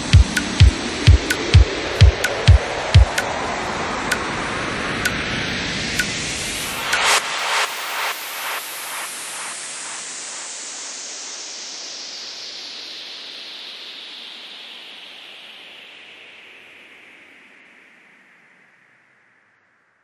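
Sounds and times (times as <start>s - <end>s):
synthesized white-noise sweep: 0.0s - 16.3s.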